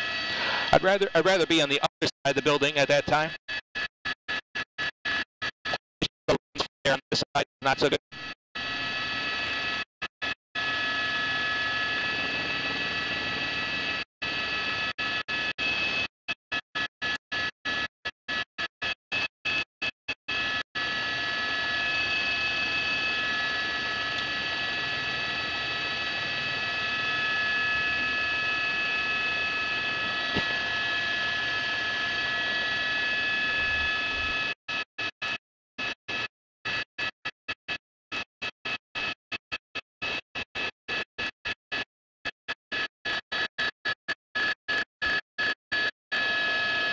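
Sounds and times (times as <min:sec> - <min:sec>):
helicopter cabin whine: 0:00.0 - 0:18.4, 0:20.3 - 0:37.4, 0:44.4 - 0:46.9.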